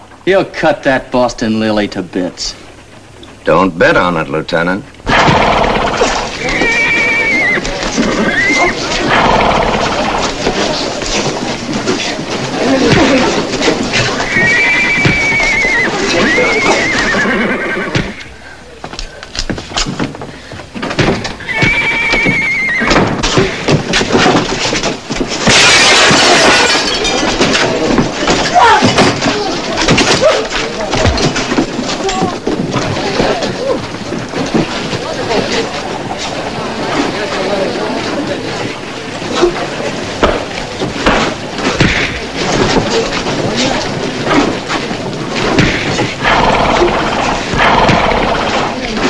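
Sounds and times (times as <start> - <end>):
loud crash: 5.1 - 6.5
horse whinnying: 5.1 - 10.4, 13.9 - 18.4, 21.4 - 23.1, 46.2 - 48.8
thuds and scuffles of fistfight: 22.9 - 25.7, 40.2 - 46.2.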